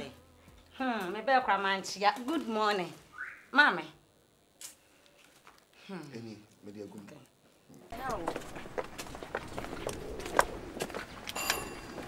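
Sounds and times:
footstep clicks on hard ground: 0:07.9 - 0:12.0.

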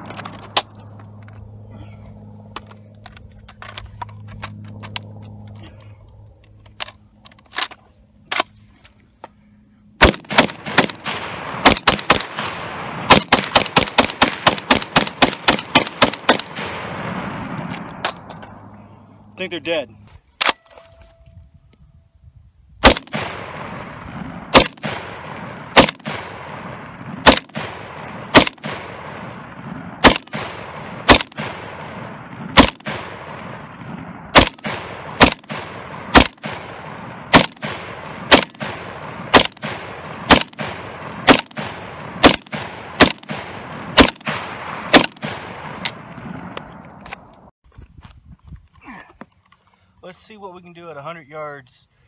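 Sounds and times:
rifle shots with echo: 0:10.0 - 0:18.2, 0:22.8 - 0:46.6.

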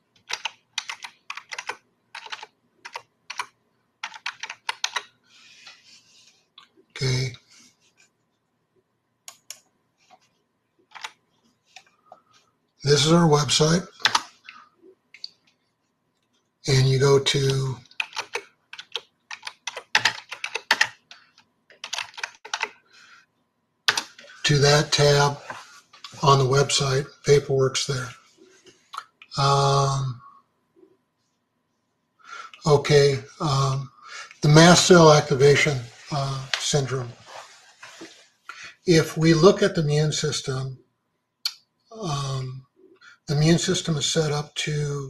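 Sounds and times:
computer keyboard typing: 0:00.2 - 0:05.1, 0:10.9 - 0:11.2, 0:13.9 - 0:14.5, 0:17.5 - 0:22.8, 0:23.9 - 0:24.4.

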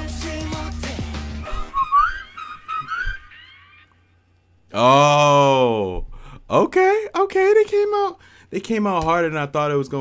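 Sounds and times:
pop song with steady beat: 0:00.0 - 0:03.3
whistled tune: 0:01.4 - 0:03.3.

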